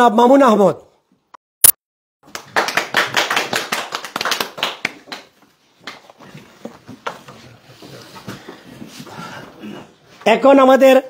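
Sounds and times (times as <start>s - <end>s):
small audience clapping: 2.2s - 6.2s.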